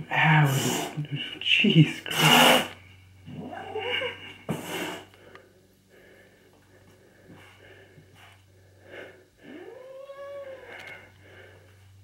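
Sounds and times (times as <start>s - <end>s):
cat yowling: 3.3s - 4.2s, 9.5s - 10.8s.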